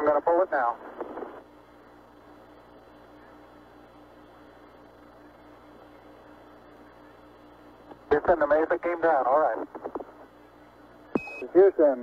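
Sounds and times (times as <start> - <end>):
faint static hiss: 0.0 - 12.0
low steady hum: 0.0 - 12.0.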